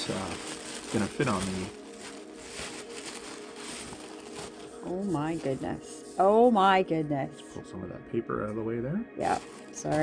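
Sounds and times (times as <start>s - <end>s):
tissue paper crinkling: 0.0s - 6.7s, 9.2s - 10.0s.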